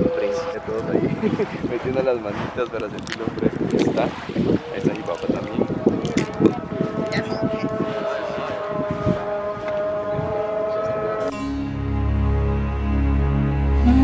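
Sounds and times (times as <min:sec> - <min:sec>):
hands splashing in water: 0:02.3 - 0:06.5
pebbles clicking: 0:02.6 - 0:03.9
call to prayer over loudspeaker: 0:04.6 - 0:11.3
background music: 0:11.2 - 0:14.0.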